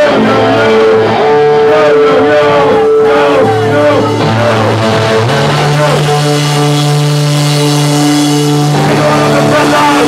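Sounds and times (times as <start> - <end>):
electric guitar droning note: 0.3 - 10.0.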